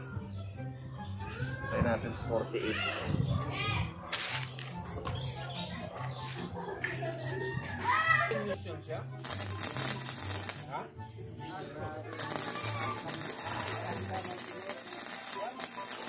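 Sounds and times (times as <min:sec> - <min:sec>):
arc welding crackling: 0:09.2 - 0:10.8, 0:12.0 - 0:16.0.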